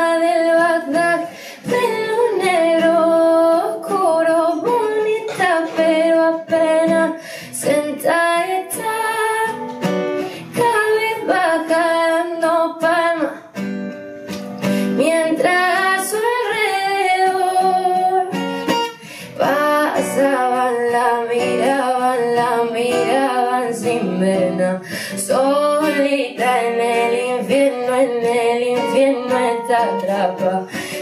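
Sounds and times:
woman singing: 0.0 - 13.6, 14.8 - 31.0
acoustic guitar: 0.0 - 31.0.

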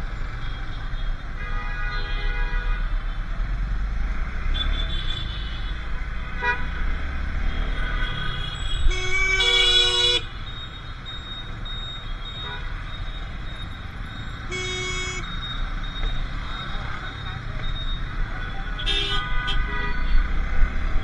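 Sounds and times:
engine hum and road noise: 0.0 - 21.0
vehicle horns honking: 7.6 - 10.4, 14.4 - 15.3, 18.6 - 20.2.

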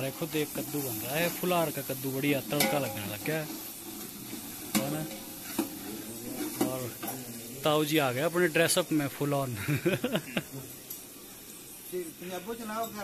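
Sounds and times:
steady sizzle: 0.0 - 13.0
ladle stirring in pot: 0.1 - 7.6.

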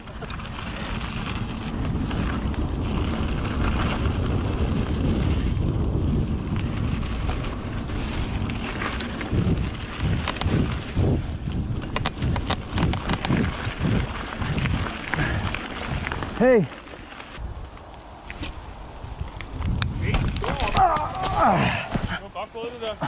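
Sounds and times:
bike rattling and knocking: 0.0 - 18.5, 19.1 - 22.2
wind rushing over microphone: 0.0 - 22.2
bike tyre rumble: 0.0 - 23.0.

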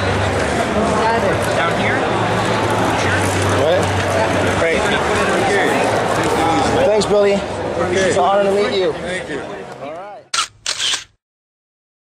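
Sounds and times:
camera shutter clicking: 10.3 - 11.2.

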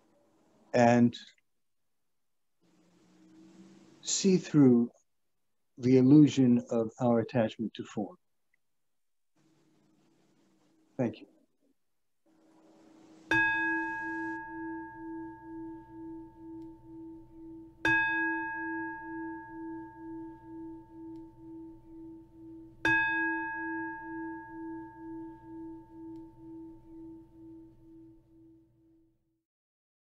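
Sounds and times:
singing bowl ringing: 13.3 - 29.0.

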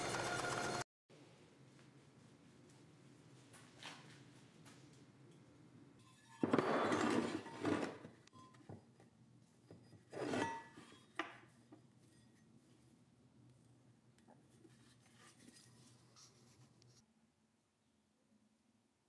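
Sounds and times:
metal scraping on workbench: 6.0 - 8.6, 9.7 - 11.3.

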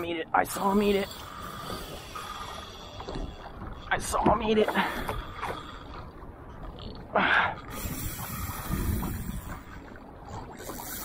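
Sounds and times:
fishing reel drag clicking: 7.7 - 9.8.

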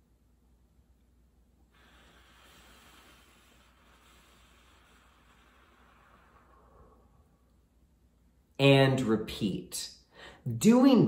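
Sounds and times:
slow breath out through mouth: 1.7 - 7.5.

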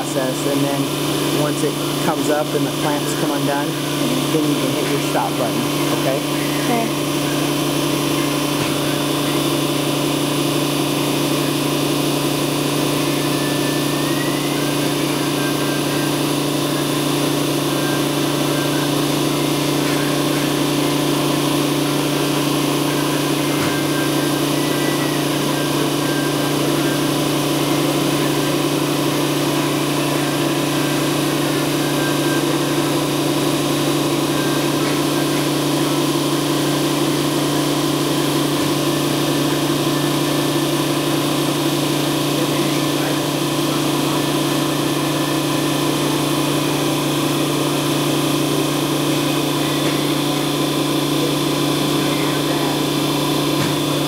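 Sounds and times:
vacuum press machine hum: 0.0 - 54.0.

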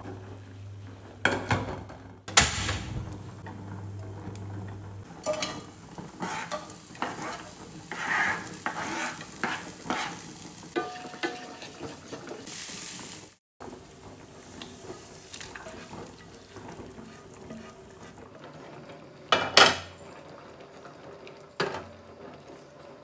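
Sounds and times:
pot boiling: 0.0 - 23.0
food sizzling in frying pan: 5.0 - 23.0
spatula scraping pan: 5.2 - 12.6, 14.4 - 20.0.

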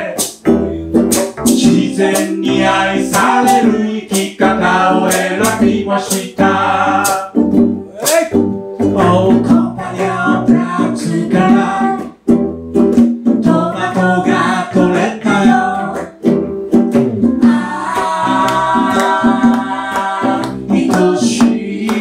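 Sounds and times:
people singing: 0.0 - 0.6, 1.4 - 7.4, 8.8 - 12.2, 13.4 - 16.2, 17.4 - 22.0
sharp percussion strokes: 0.0 - 6.3
acoustic guitar: 0.0 - 22.0
strummed ukulele: 0.0 - 22.0.

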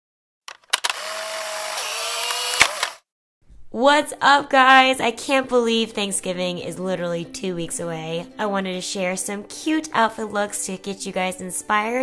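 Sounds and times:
sharp clicks: 0.5 - 3.0.

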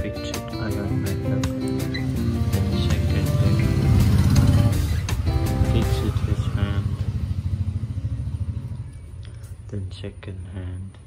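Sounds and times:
pulsing engine rumble: 2.0 - 11.0.

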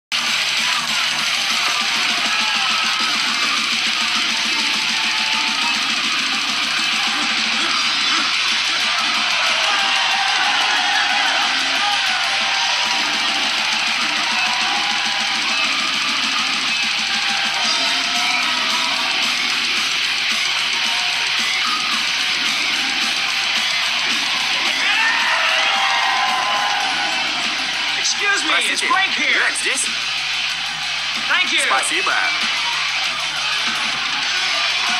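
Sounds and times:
heavy metal music: 0.1 - 34.9.

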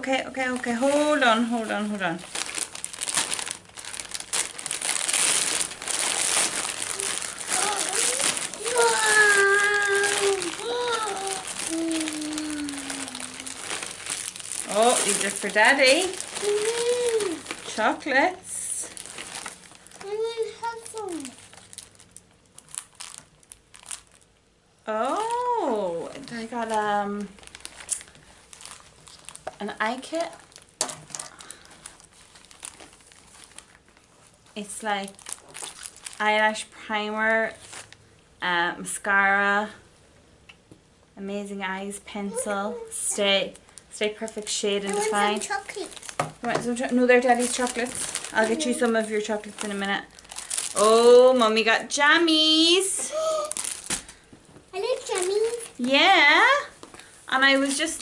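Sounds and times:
plastic wrapping crinkling: 0.0 - 38.1, 42.3 - 58.0.

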